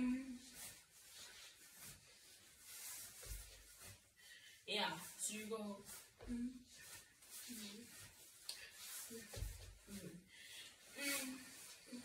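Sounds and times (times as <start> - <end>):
feet and clothing rubbing: 0.2 - 10.3.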